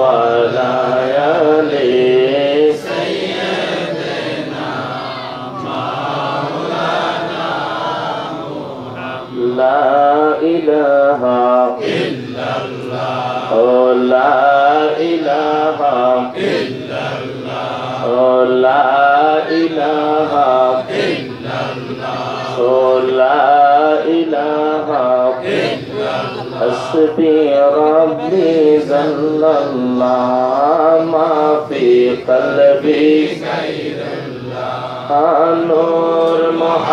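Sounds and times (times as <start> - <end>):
man chanting into a microphone: 0.0 - 5.7, 8.8 - 36.9.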